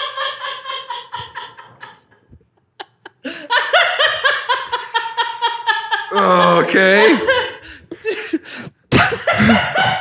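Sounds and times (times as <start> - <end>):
man laughing helplessly: 0.0 - 10.0.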